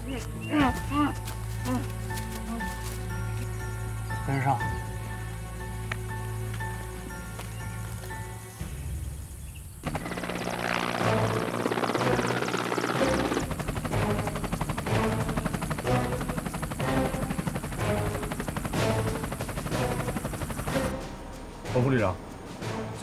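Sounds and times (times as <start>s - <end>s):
soundtrack music with sustained tones: 0.0s - 23.0s
helicopter rotors chopping: 9.8s - 21.2s.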